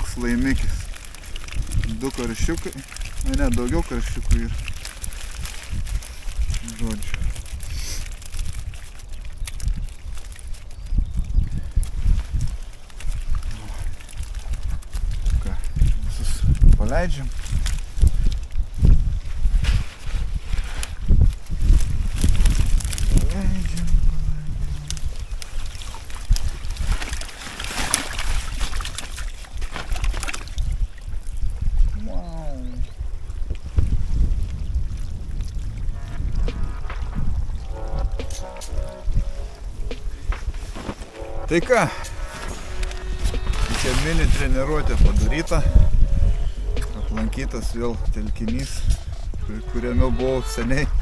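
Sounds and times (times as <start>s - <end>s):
wind buffeting microphone: 0.0s - 27.3s, 28.2s - 51.0s
water pouring and sloshing: 0.0s - 50.9s.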